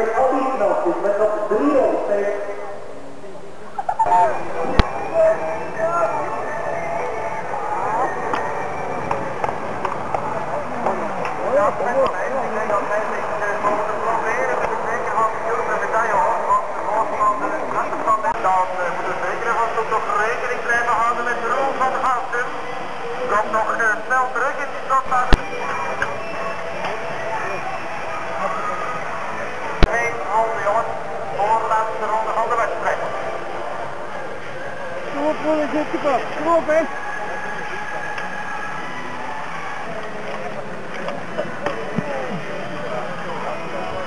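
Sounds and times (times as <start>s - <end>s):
babble of spectators talking: 0.0s - 44.0s.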